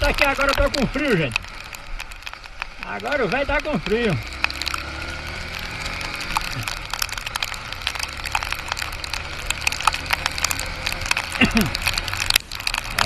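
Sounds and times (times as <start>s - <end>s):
motorcycle engine hum: 0.0s - 13.0s.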